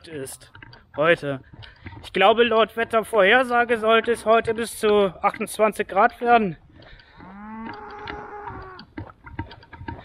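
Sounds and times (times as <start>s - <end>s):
cow mooing: 7.2s - 8.9s.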